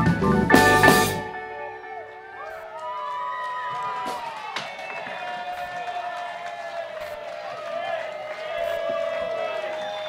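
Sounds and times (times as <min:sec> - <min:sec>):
audience chattering: 0:00.0 - 0:10.0.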